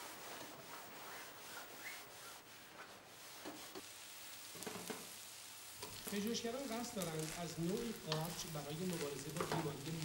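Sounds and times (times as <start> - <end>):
food sizzling in a pot: 3.2 - 10.0.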